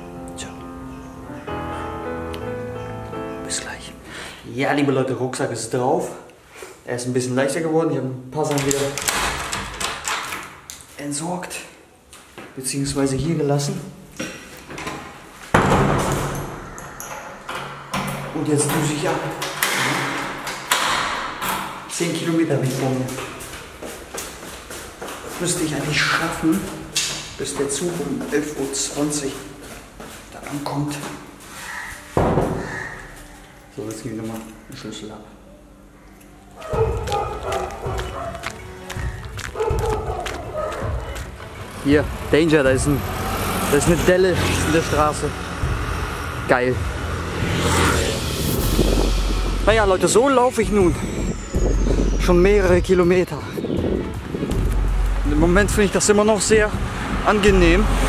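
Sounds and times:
background music with steady beat: 35.7s - 43.0s, 44.9s - 58.0s.

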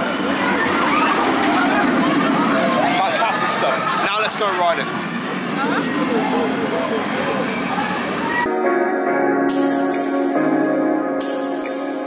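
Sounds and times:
jumble of voices: 0.0s - 8.5s
roller coaster rushing along track: 0.0s - 8.5s.

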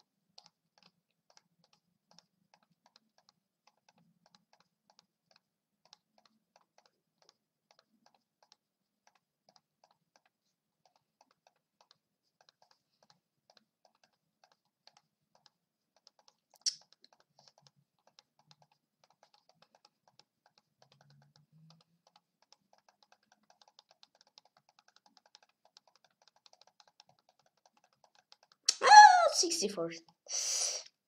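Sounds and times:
computer mouse clicks: 0.0s - 28.8s.

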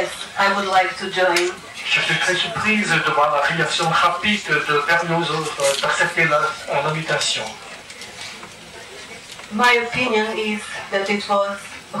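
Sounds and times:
low steady room noise: 0.0s - 12.0s.

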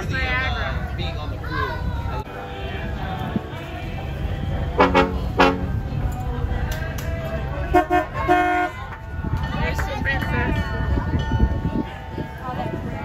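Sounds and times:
wind rumble on microphone: 0.0s - 13.0s
boat horn toots: 4.7s - 5.9s, 7.6s - 9.0s.

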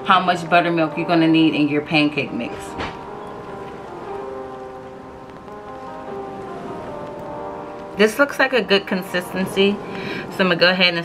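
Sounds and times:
background music with sustained tones: 0.0s - 11.0s.

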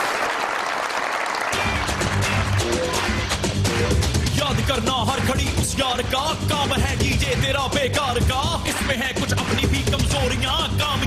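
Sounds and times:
studio audience applauding: 0.0s - 6.7s
music with steady bass line: 1.6s - 11.0s.

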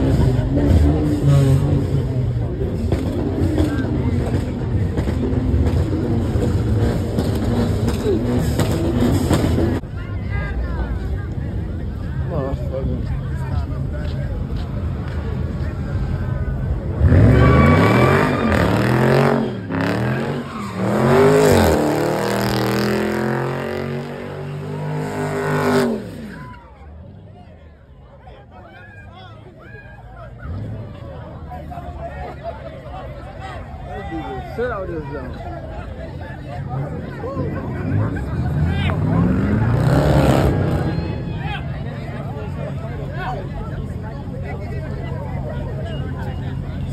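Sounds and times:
crowd chatter: 0.0s - 46.9s
car engine revving hard: 16.9s - 26.3s, 38.5s - 40.9s.

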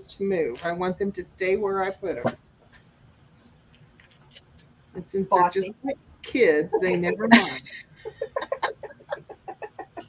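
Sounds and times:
woman laughing: 6.8s - 10.0s.

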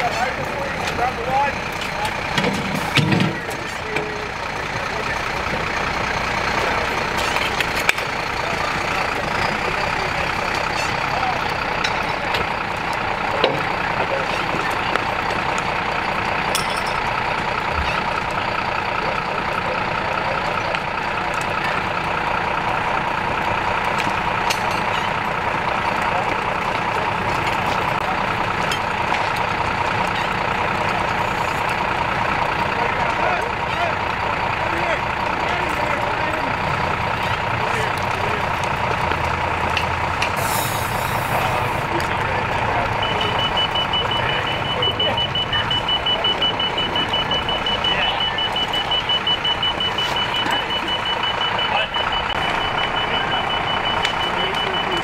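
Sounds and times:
diesel engine running: 0.0s - 55.0s
rapid high-pitched beeping: 42.9s - 55.0s.

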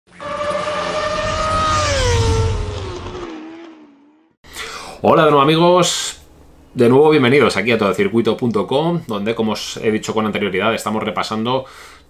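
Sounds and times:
racing engine at high revs: 0.1s - 4.4s.

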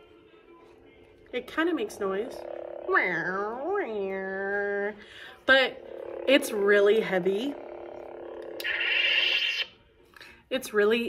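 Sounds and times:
electronic lightsaber hum: 1.4s - 9.8s
high electronic buzz: 5.4s - 9.7s.

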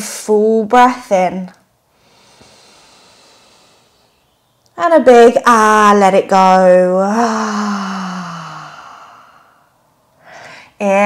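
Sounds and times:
person breathing in deeply: 2.0s - 4.1s, 7.2s - 10.8s.

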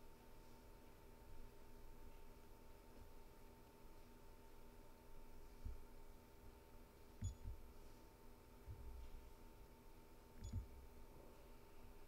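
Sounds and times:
faint steady tone: 0.0s - 12.0s
soft low thumps: 5.6s - 5.9s, 7.2s - 7.7s, 8.6s - 9.2s, 10.4s - 10.8s.

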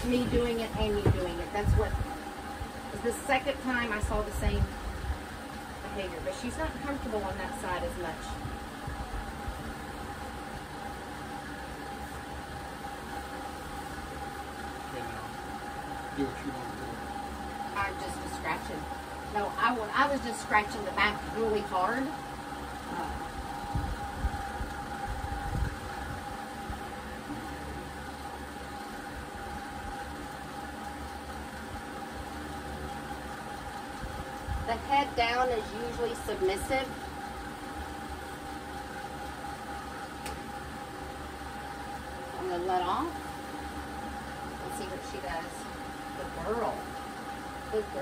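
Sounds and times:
motor hum with high tone: 0.0s - 48.0s.

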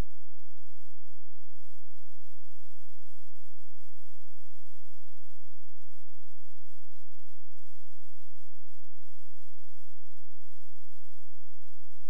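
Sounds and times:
low electrical hum with hiss: 0.0s - 12.0s.

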